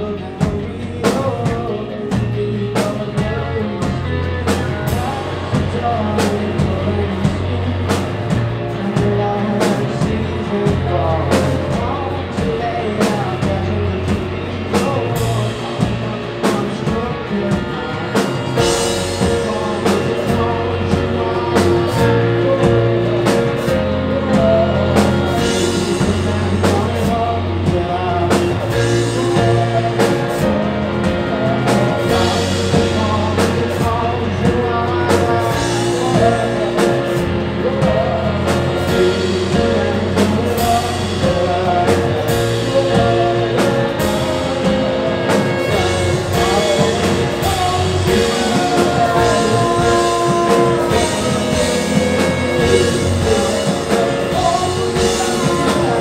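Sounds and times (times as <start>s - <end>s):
bass guitar: 0.0s - 56.0s
drum kit beat: 0.0s - 56.0s
electric guitars: 0.0s - 56.0s.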